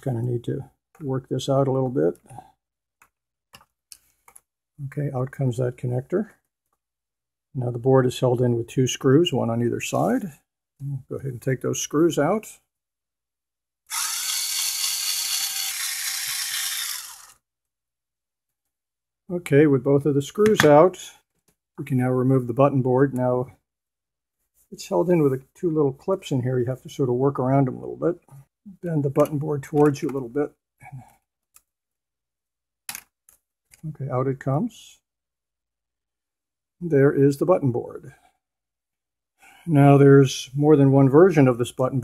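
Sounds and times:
electric screwdriver running: 13.9 - 17.4.

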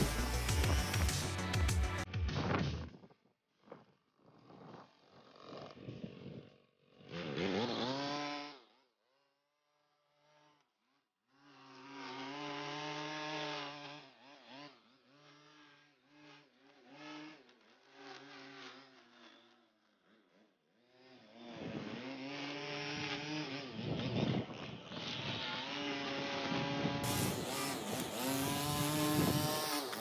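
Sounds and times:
string trimmer engine revving: 0.0 - 2.1, 3.6 - 8.8, 11.4 - 19.6, 20.8 - 30.0.

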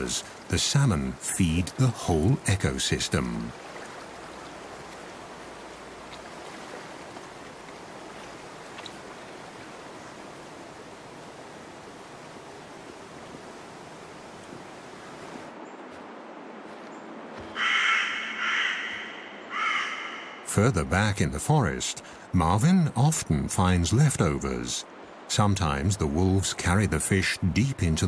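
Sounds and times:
stream water rushing: 0.0 - 28.0
crow cawing: 17.5 - 20.5.

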